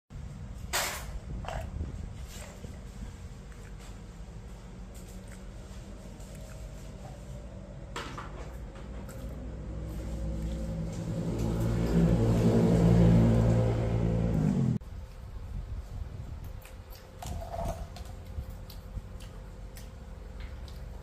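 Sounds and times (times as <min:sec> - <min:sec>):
steady motor drone: 0:01.2 - 0:21.0.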